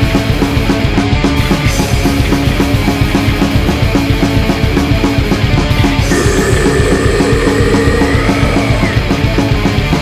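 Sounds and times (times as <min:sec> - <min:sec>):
distorted guitars and bass: 0:00.0 - 0:10.0.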